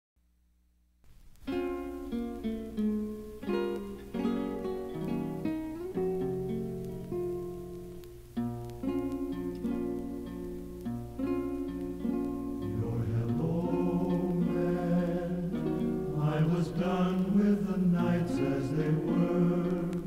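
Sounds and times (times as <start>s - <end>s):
acoustic guitar plucking melody: 1.2s - 20.0s
steady low hum: 11.8s - 20.0s.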